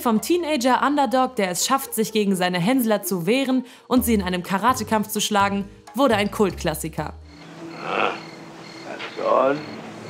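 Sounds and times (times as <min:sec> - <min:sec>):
crickets chirping: 0:07.2 - 0:10.0.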